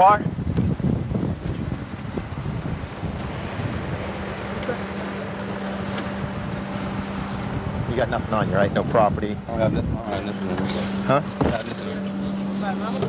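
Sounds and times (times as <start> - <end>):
steady low hum: 0.0 - 13.0
wind buffeting microphone: 0.0 - 13.0.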